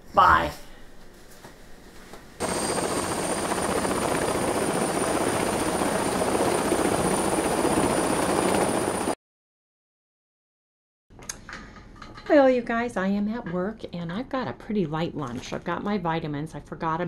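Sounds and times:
gyroplane engine and rotor: 2.4s - 9.1s.

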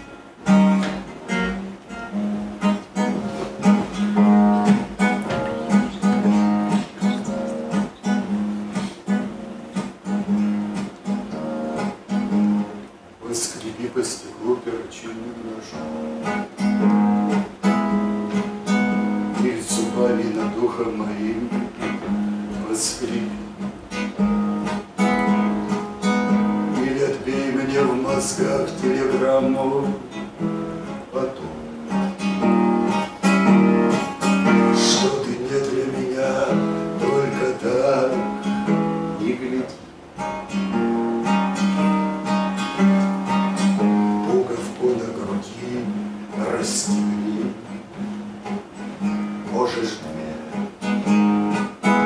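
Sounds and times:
acoustic guitar strumming chords: 0.0s - 52.0s
man singing: 13.2s - 15.9s, 19.3s - 23.5s, 26.6s - 30.2s, 31.0s - 31.7s, 34.2s - 39.8s, 43.8s - 47.8s, 49.4s - 50.6s.

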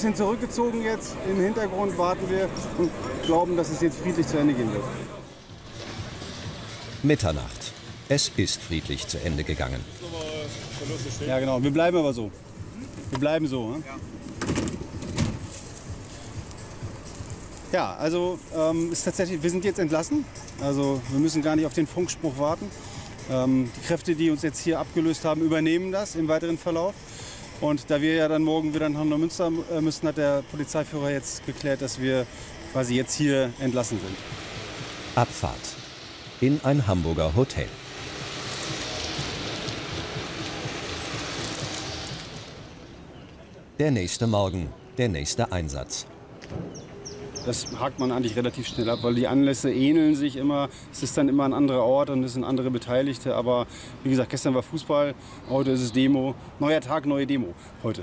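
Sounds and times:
vans driving past: 0.0s - 58.0s.

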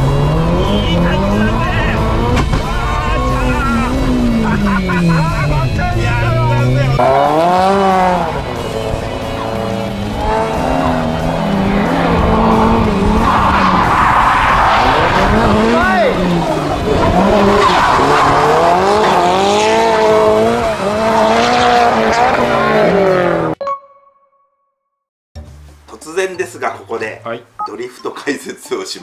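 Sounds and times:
car engine revving: 0.0s - 23.6s.

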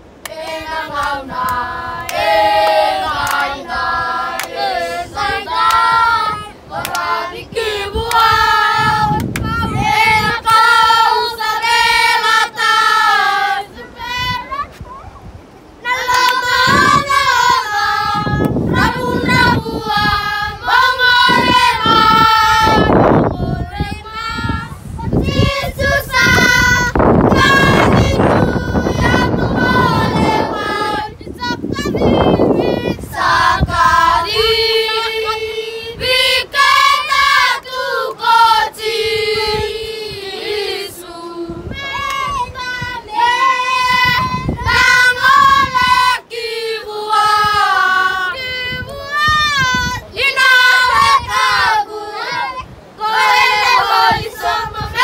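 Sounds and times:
children singing together: 0.2s - 14.7s, 15.8s - 55.0s.

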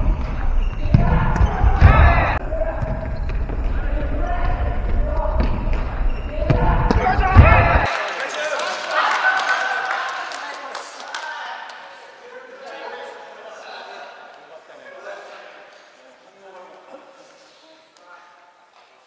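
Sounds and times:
players shouting: 6.3s - 10.4s.

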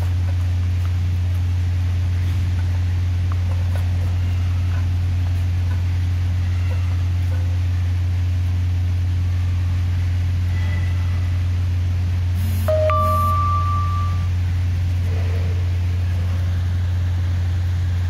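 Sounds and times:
loud low-pitched hum: 0.0s - 18.0s
brief higher tone: 12.7s - 14.4s.

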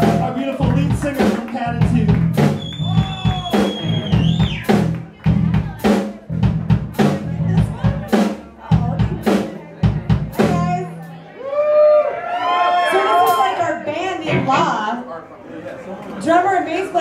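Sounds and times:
heavy electric bass line: 0.0s - 11.2s
drum kit beat: 0.0s - 11.3s, 13.0s - 14.9s.

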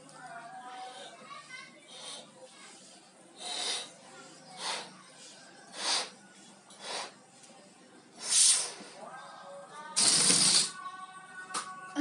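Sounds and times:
child blowing up a balloon: 1.9s - 2.4s, 3.4s - 4.0s, 4.6s - 5.0s, 5.7s - 6.2s, 6.8s - 7.2s, 8.2s - 9.0s, 10.0s - 10.8s.

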